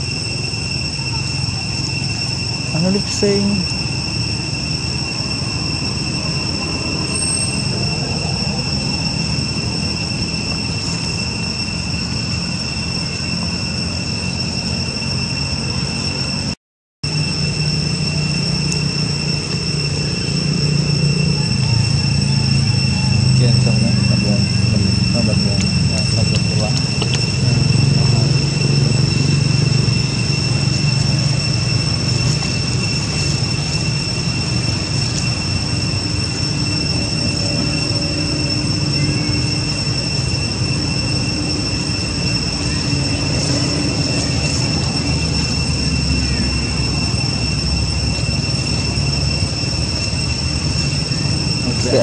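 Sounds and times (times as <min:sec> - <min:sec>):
high-pitched insect drone: 0:00.0 - 0:52.0
low outdoor rumble: 0:00.0 - 0:52.0.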